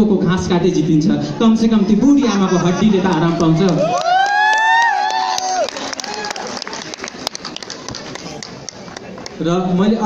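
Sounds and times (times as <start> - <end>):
crowd voices: 0.6 - 10.0
audience clapping: 3.0 - 9.4.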